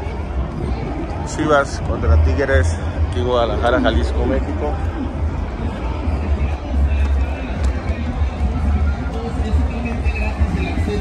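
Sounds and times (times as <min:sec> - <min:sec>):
crowd chatter: 0:00.0 - 0:11.0
music playing: 0:00.0 - 0:11.0
steady low rumble: 0:00.0 - 0:11.0.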